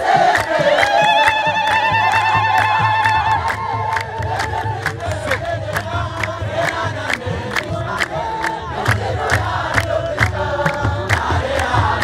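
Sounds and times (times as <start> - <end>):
crowd clapping in rhythm: 0.0 - 12.0
drum beating: 0.0 - 12.0
voices chanting: 0.0 - 12.0.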